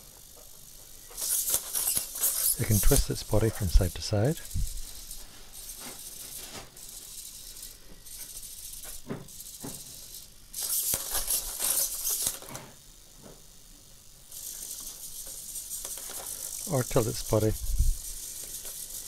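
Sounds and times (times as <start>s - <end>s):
robot servos buzzing and whirring: 0.1s - 19.0s.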